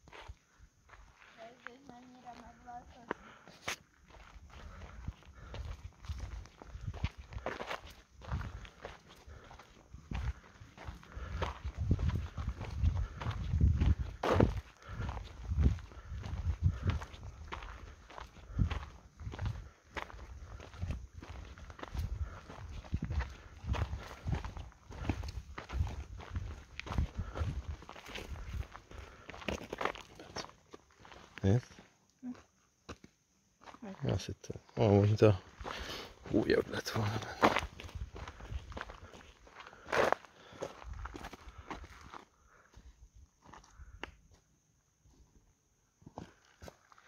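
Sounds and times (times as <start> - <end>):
footsteps on gravel: 0.0 - 33.8, 34.9 - 42.8.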